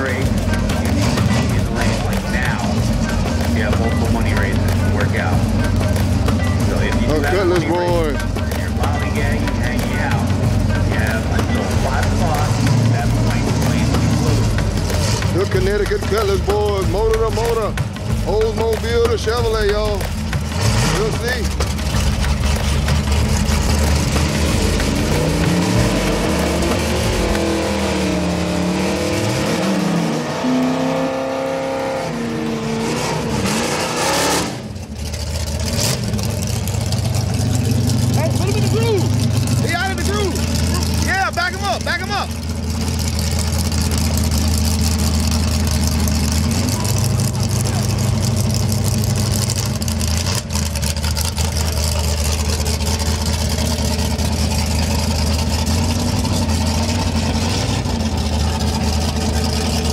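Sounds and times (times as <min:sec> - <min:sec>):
drag car engines idling: 0:00.0 - 0:59.9.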